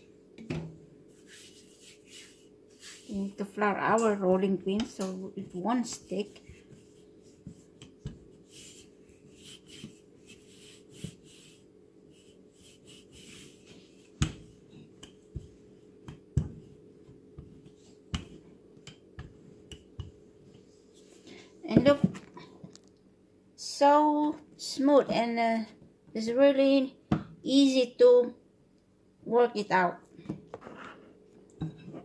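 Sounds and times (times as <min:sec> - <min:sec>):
steady low hum: 0:00.0 - 0:24.6
rolling pin rolling dough: 0:01.1 - 0:21.1.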